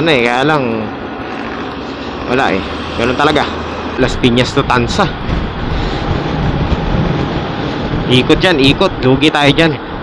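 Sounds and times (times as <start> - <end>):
road noise: 0.0 - 10.0
wind rushing on microphone: 1.1 - 10.0.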